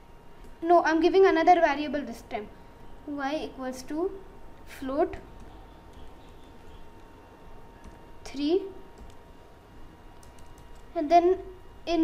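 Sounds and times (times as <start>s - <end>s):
computer keyboard keystrokes: 9.0s - 9.2s, 10.2s - 10.9s.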